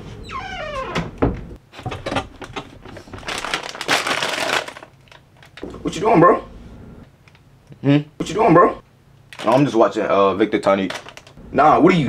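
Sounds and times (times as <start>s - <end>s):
chip bag crinkling: 3.0s - 5.6s, 9.3s - 9.8s, 10.6s - 11.4s.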